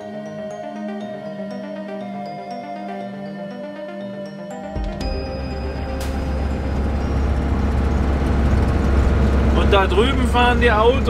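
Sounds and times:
background music: 0:00.0 - 0:11.0
vehicle engine and road noise: 0:05.8 - 0:11.0.

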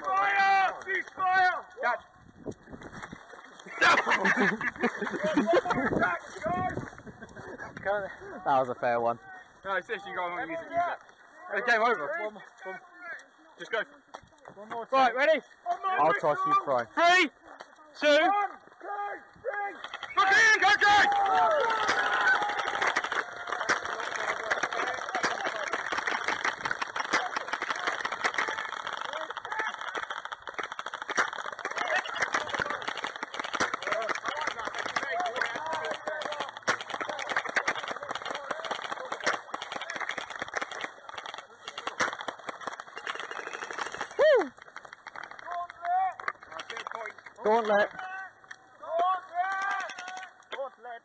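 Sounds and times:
distant shouts: 0:00.0 - 0:02.1, 0:15.6 - 0:46.9
loud falling shout: 0:18.9 - 0:40.3, 0:43.2 - 0:44.6
airsoft guns firing: 0:19.8 - 0:44.2.

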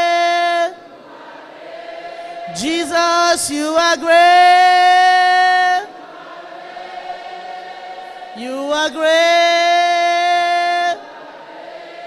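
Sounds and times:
congregation singing softly: 0:00.0 - 0:12.0.

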